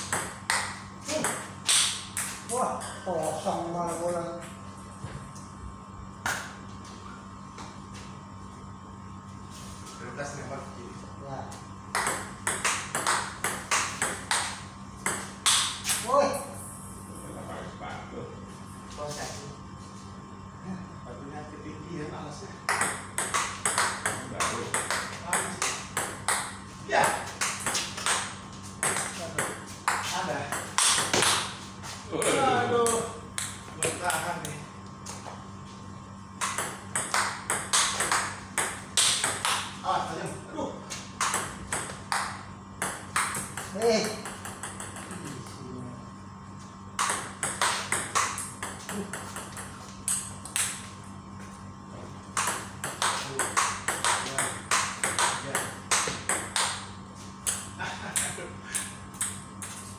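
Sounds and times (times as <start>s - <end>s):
ball bouncing on table: 0.0s - 3.0s, 11.9s - 16.0s, 22.7s - 31.5s, 36.4s - 39.8s, 41.2s - 45.4s, 47.0s - 50.9s, 52.3s - 56.8s.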